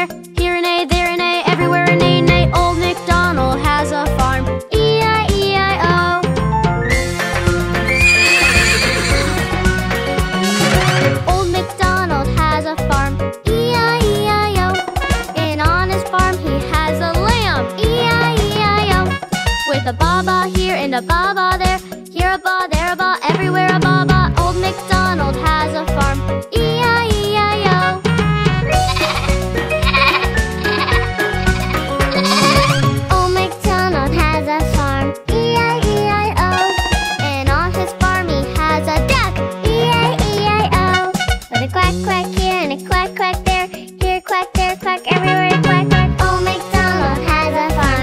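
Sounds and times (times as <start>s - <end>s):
children's background music: 0.0s - 48.0s
horse whinnying: 7.8s - 9.5s, 10.2s - 11.3s, 28.8s - 33.0s
cartoon sheep bleating: 7.9s - 9.4s, 28.7s - 33.0s.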